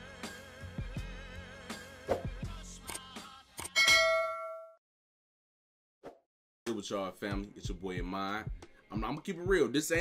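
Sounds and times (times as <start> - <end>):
bright bell ding: 3.8 - 4.8.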